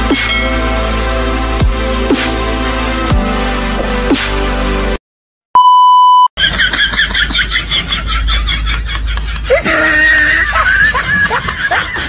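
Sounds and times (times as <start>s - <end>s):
steady electronic beep: 5.6s - 6.3s.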